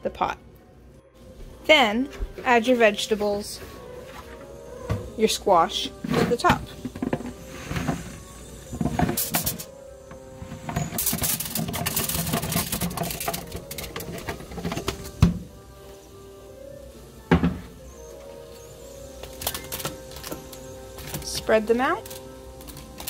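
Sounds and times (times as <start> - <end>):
background music with held notes: 0.0 - 23.0.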